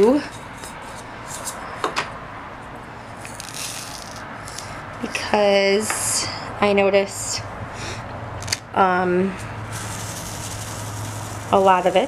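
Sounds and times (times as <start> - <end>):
plastic beads rattling in a tray: 3.3 - 4.6, 9.7 - 12.0
grains sliding hiss: 3.3 - 4.8, 9.7 - 12.0.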